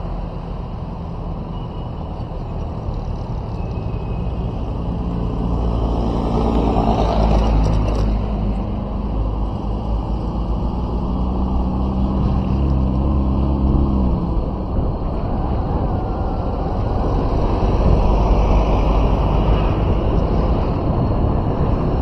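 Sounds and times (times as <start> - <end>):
vehicle engine hum and road noise: 0.0 - 22.0.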